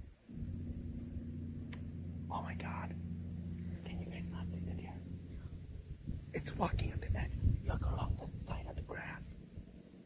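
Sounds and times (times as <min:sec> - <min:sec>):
low hum of even tones: 0:00.0 - 0:10.0
person whispering: 0:02.3 - 0:03.0, 0:03.7 - 0:05.0, 0:06.3 - 0:09.4.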